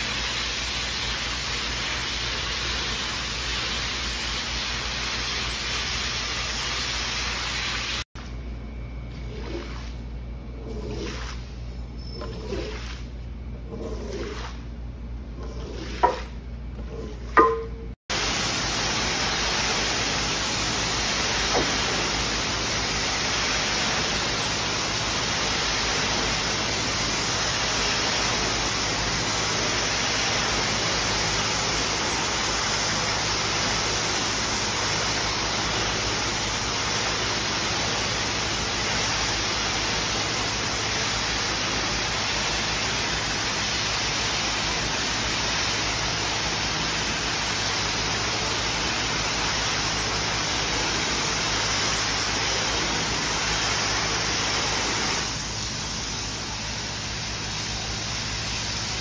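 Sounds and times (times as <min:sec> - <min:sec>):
pressure washer spraying water: 0:00.0 - 0:08.1, 0:15.4 - 0:59.0.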